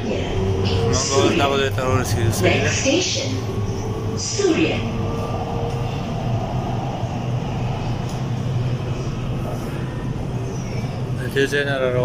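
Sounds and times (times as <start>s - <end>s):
metro train running on track: 0.0s - 12.0s.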